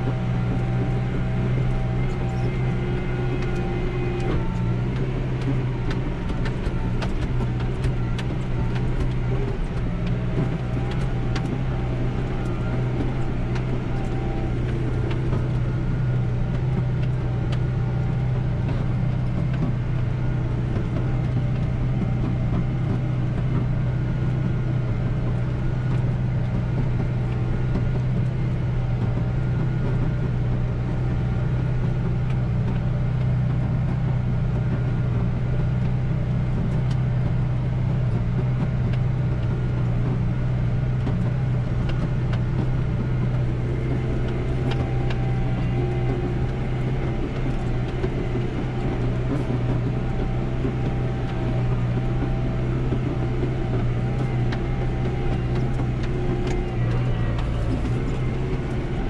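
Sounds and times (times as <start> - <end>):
tractor diesel engine droning: 0.0 - 59.0.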